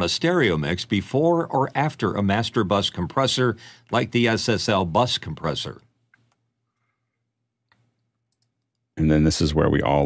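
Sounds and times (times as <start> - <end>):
faint clicks: 7.7 - 8.9.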